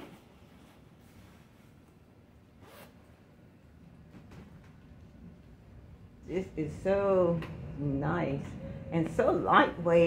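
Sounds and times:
zipper rasp: 0:02.6 - 0:03.1.

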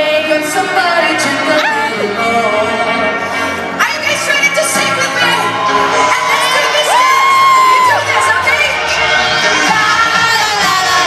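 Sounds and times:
live pop music: 0:00.0 - 0:11.0
audience cheering: 0:05.2 - 0:08.7.

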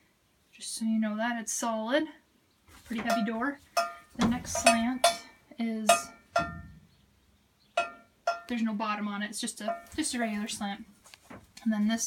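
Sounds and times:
metal stall divider knocked ringing: 0:03.0 - 0:06.8.

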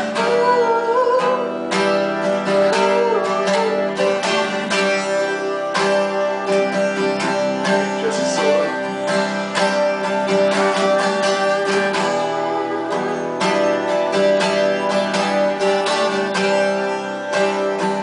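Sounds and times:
man singing: 0:00.0 - 0:13.8
acoustic guitars strumming: 0:00.0 - 0:18.0.

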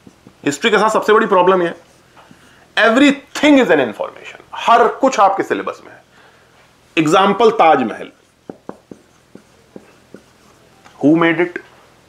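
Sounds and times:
marker pen writing on whiteboard: 0:00.0 - 0:03.0, 0:07.0 - 0:11.1.

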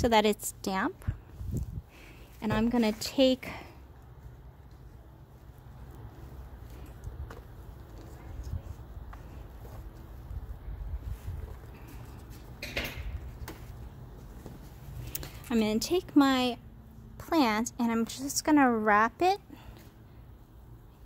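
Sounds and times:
rustles and taps of handling plants: 0:00.4 - 0:15.9
wind on microphone: 0:01.0 - 0:01.9.

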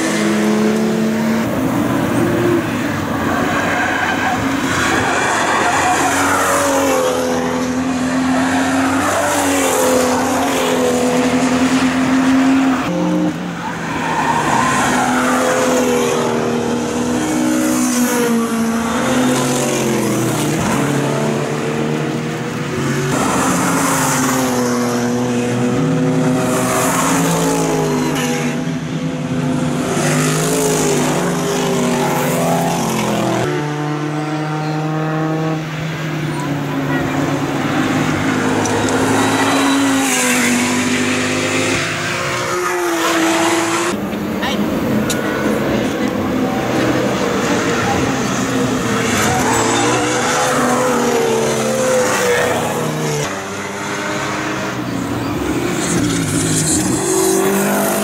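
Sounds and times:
race cars driving past: 0:00.0 - 0:58.0.

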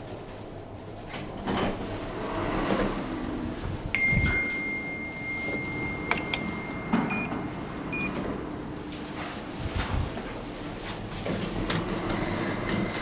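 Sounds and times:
short beeps: 0:04.0 - 0:08.1.

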